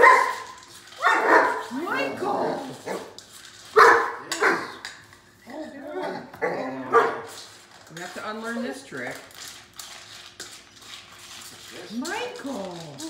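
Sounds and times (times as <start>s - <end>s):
dog barking: 0.0s - 1.7s, 3.8s - 4.8s, 6.9s - 7.3s.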